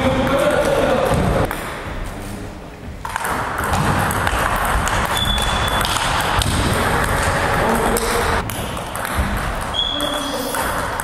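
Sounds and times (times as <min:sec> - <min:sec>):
table tennis balls clicking: 0:03.0 - 0:11.0.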